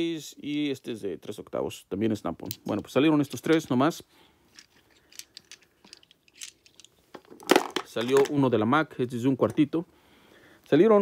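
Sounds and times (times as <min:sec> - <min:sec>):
metal tools clinking: 0:04.5 - 0:08.3.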